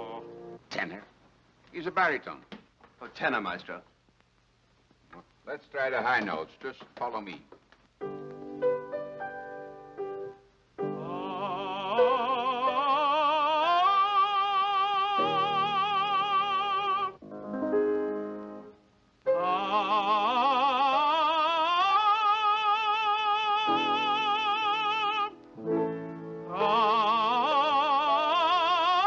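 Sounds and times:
man singing without words: 0:00.0 - 0:00.5, 0:10.8 - 0:17.2, 0:19.3 - 0:25.4, 0:26.4 - 0:29.0
piano accompaniment: 0:08.0 - 0:13.2, 0:15.2 - 0:20.2, 0:23.6 - 0:27.8.

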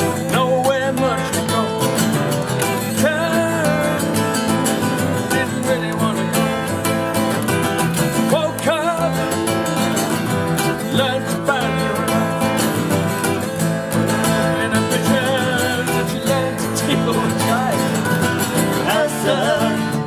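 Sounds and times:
acoustic guitars strumming: 0:00.0 - 0:20.0
man singing: 0:00.0 - 0:20.0.

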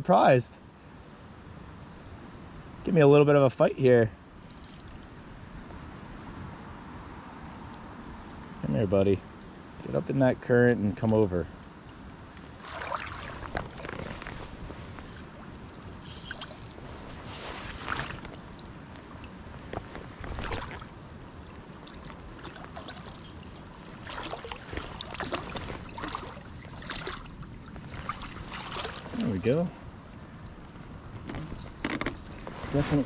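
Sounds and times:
creek water flowing: 0:12.5 - 0:33.0
water splashes: 0:12.6 - 0:30.7.

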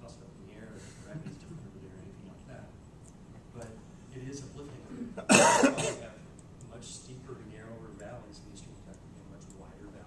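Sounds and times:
person coughing loudly: 0:04.9 - 0:06.1.

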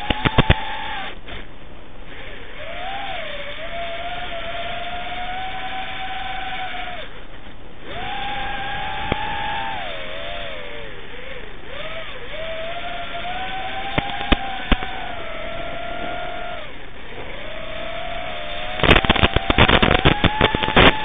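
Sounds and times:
sharp click: 0:00.0 - 0:00.6, 0:13.9 - 0:14.9, 0:18.8 - 0:21.0
drone motors whining: 0:00.0 - 0:21.0.

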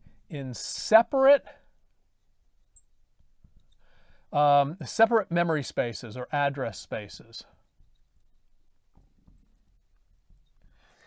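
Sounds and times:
faint high-pitched chirps: 0:02.4 - 0:03.9, 0:06.9 - 0:11.0.

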